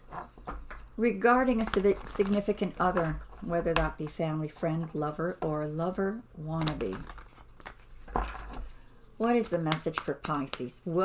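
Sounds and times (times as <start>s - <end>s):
papery rustle of cards: 0.2s - 3.8s, 6.5s - 11.0s
cards clicking on table: 9.5s - 10.7s.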